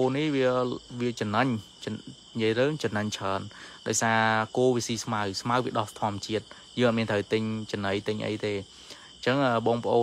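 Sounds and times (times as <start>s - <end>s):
crickets chirping: 0.0s - 10.0s
man talking: 0.0s - 10.0s.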